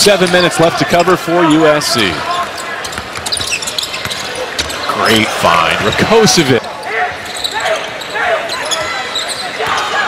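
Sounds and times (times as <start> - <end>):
voices echoing in hall: 0.0 - 10.0
basketball bouncing on court: 2.5 - 4.8.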